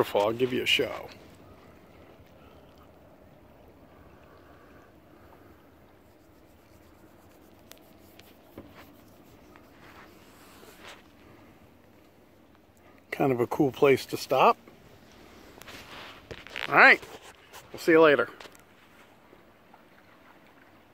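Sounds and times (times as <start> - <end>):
low steady outdoor hush: 0.0 - 20.9.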